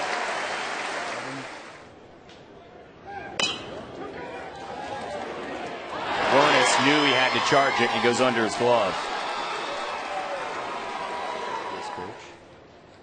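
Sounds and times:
crowd noise: 0:00.0 - 0:13.0
metal bat hitting ball: 0:03.4 - 0:04.0.

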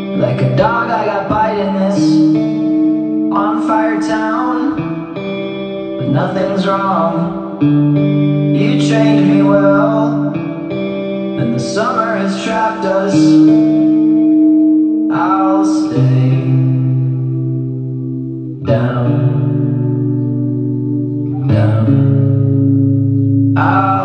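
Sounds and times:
echoing sung phrases: 0:00.0 - 0:07.8, 0:08.4 - 0:17.7, 0:18.5 - 0:20.2, 0:21.3 - 0:22.6, 0:23.5 - 0:24.0
slow song with held chords: 0:00.0 - 0:24.0.

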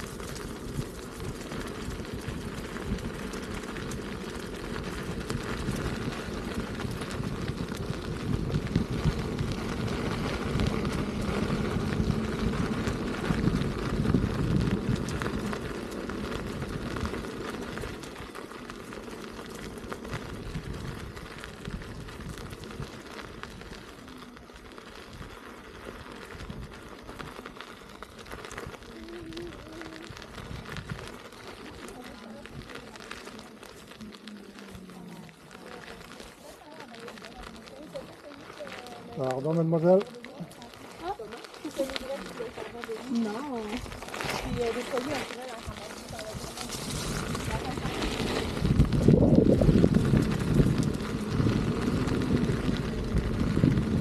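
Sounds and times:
tyre rolling over gravel: 0:00.0 - 0:54.0
wind buffeting microphone: 0:00.0 - 0:54.0.

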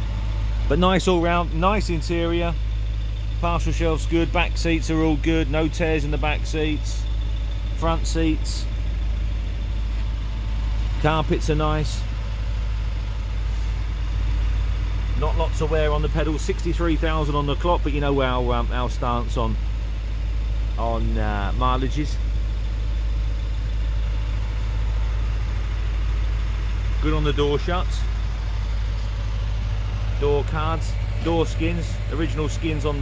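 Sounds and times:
car engine idling: 0:00.0 - 0:33.0.

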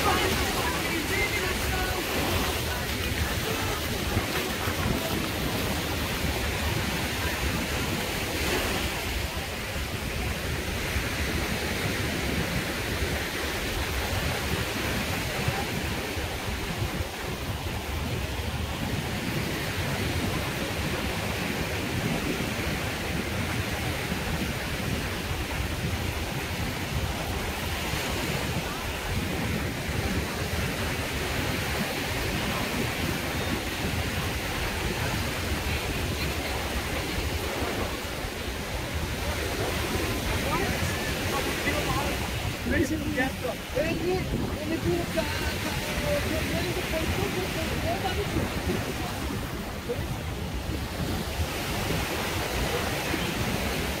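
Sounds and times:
small waves washing onto sand: 0:00.0 - 0:54.0
wind buffeting microphone: 0:00.0 - 0:54.0.

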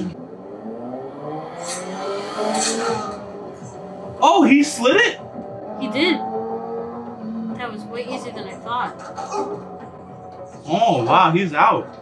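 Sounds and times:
drama soundtrack music: 0:00.0 - 0:12.0
vehicle engine: 0:00.0 - 0:12.0.

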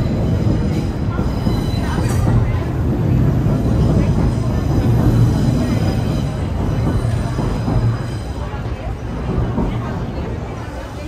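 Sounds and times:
crowd chatter: 0:00.0 - 0:11.0
train rumbling: 0:00.0 - 0:11.0.

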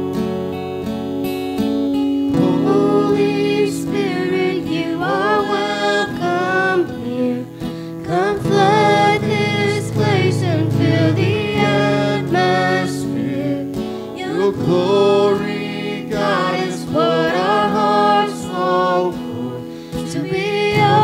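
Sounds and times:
acoustic guitar: 0:00.0 - 0:21.0
man and girl singing a hymn: 0:02.4 - 0:21.0.

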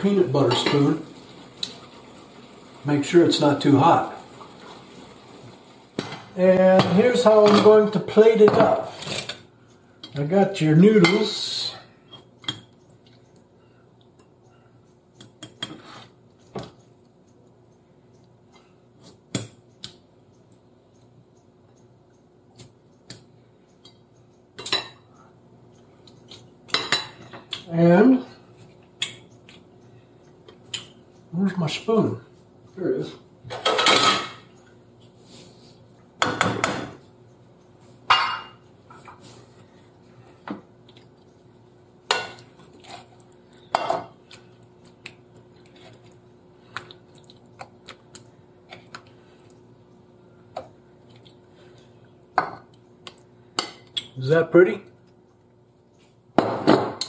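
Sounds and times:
utensils clinking on plates: 0:33.5 - 0:34.5.

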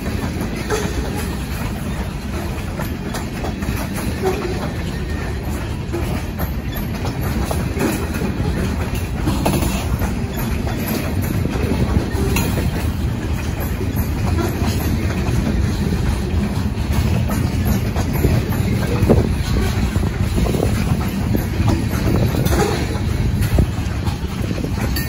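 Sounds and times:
train wheels rumbling on rail: 0:00.0 - 0:25.0
wheels clacking on track: 0:00.0 - 0:25.0.

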